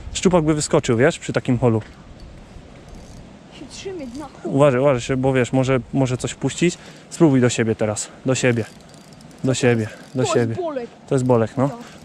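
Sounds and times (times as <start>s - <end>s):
outdoor background noise: 0.0s - 12.0s
man talking: 0.2s - 1.9s, 4.4s - 8.7s, 9.4s - 12.0s.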